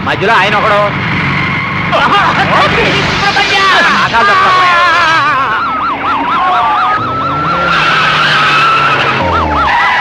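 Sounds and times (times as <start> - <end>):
car driving fast with road noise: 0.0 - 10.0
people shouting: 2.0 - 10.0.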